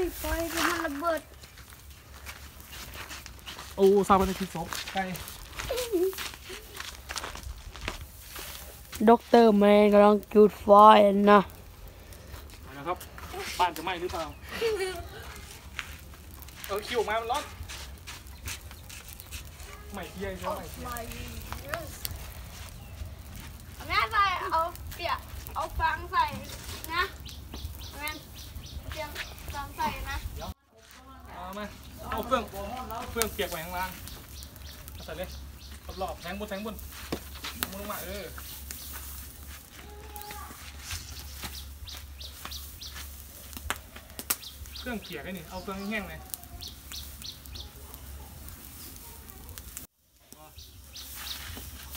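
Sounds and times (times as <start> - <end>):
voices: 0.0 - 1.4, 12.4 - 51.9
small birds chirping: 0.0 - 51.9
straw fire crackling: 0.0 - 51.9.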